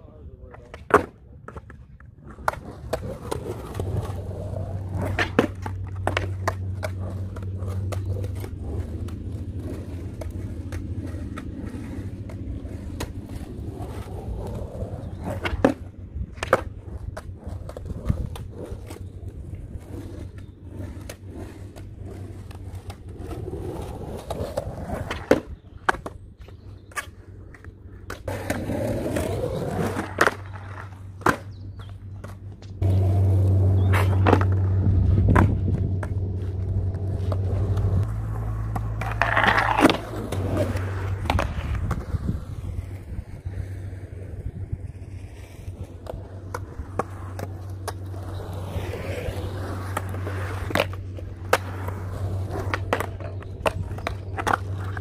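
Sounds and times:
skateboard wheels rolling on concrete: 0.0 - 55.0
skateboard clacking on concrete: 0.3 - 55.0.

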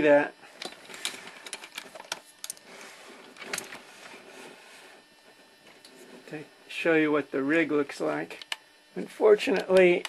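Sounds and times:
clicking and crackling: 8.3 - 8.6, 9.5 - 10.0.

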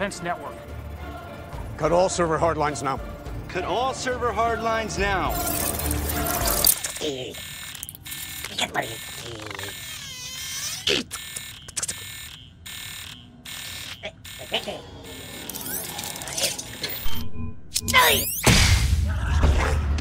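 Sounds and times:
alarm-like tones: 0.0 - 10.5, 11.2 - 18.5
electronic beeps and blips: 5.3 - 18.8.

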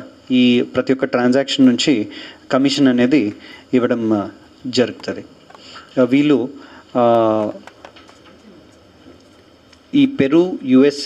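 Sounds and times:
man speaking into microphone: 0.0 - 5.3, 5.9 - 7.6, 9.9 - 11.0
faint room noise: 0.0 - 11.0.

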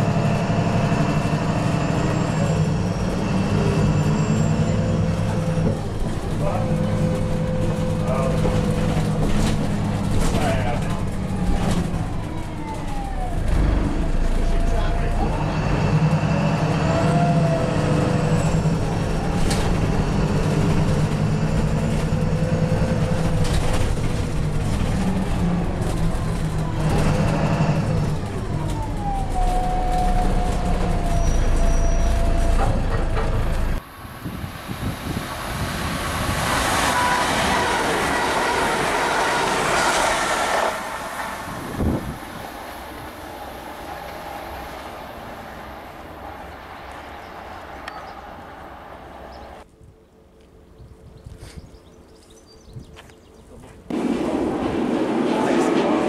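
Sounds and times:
bus diesel engine hum: 0.0 - 56.0
train wheels on rails: 34.6 - 49.7, 53.5 - 56.0.

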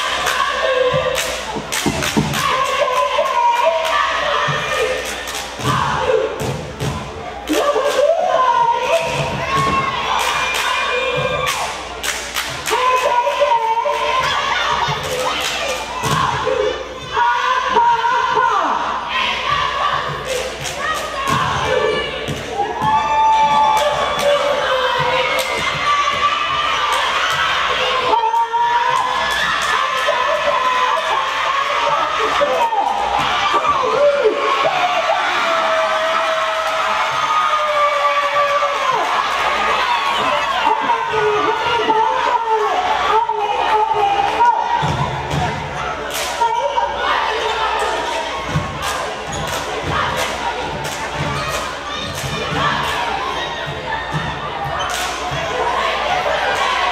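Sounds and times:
cheerleaders shouting a chant: 0.0 - 56.9
crowd noise: 0.0 - 56.9
stomps: 1.0 - 2.5
sharp claps: 48.8 - 53.0.

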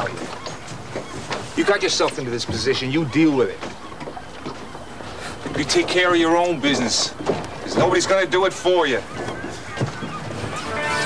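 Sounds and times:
outdoor background noise: 0.0 - 11.0
background music chord: 10.6 - 11.0.

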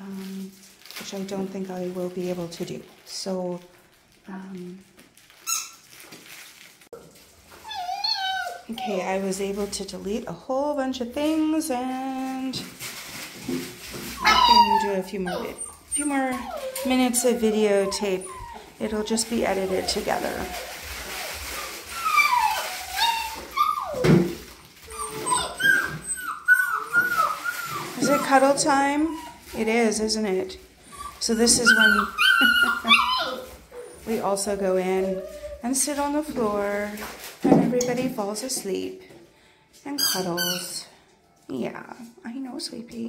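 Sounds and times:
puppy whining: 7.5 - 9.4, 14.0 - 30.0, 30.7 - 36.3.

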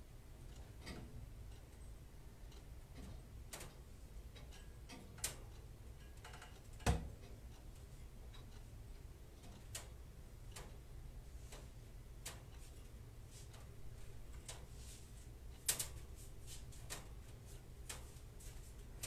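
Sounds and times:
low steady hum: 0.0 - 19.0
faint clicks and ticks: 0.2 - 19.0.

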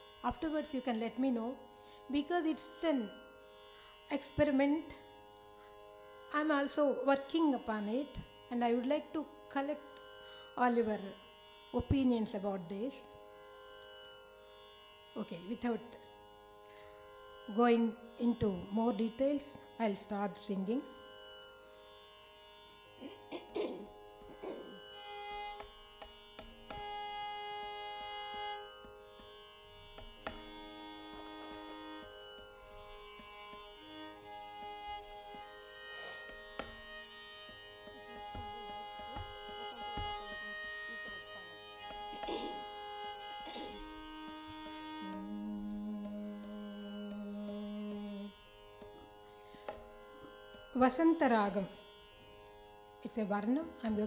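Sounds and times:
violin holding steady notes: 0.0 - 54.0
drum taps: 38.3 - 40.3.

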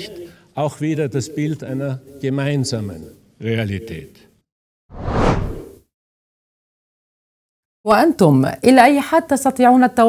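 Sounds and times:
whoosh sound effect: 4.9 - 5.8.

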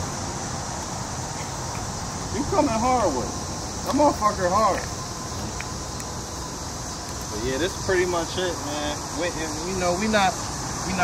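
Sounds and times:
constant high hiss: 0.0 - 11.0.

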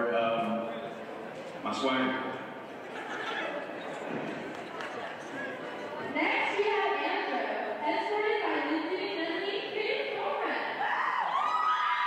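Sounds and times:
whoops: 10.8 - 12.0.

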